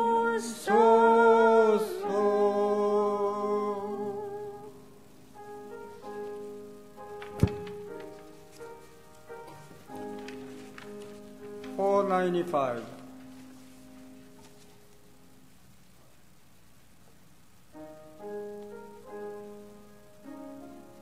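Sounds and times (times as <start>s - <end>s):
person singing with vibrato: 0.0s - 5.0s
soft sustained music: 0.0s - 15.6s, 17.8s - 21.0s.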